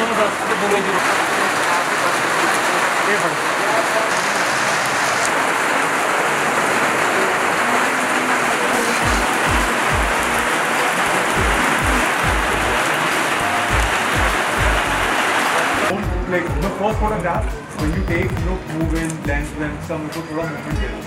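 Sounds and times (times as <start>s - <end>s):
rain on wet pavement: 0.0s - 16.0s
music with deep bass beat: 8.9s - 10.5s, 11.2s - 15.1s, 16.0s - 21.0s.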